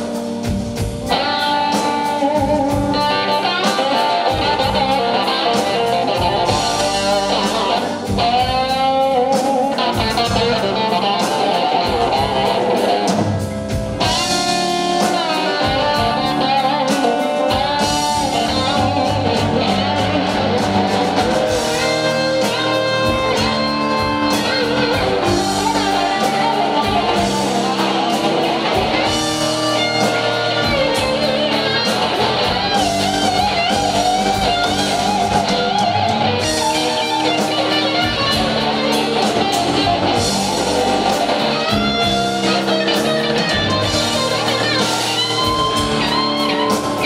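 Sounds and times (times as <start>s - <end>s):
drums: 0.0s - 47.0s
electric guitars with bent notes: 0.0s - 47.0s
live blues band playing: 0.0s - 47.0s.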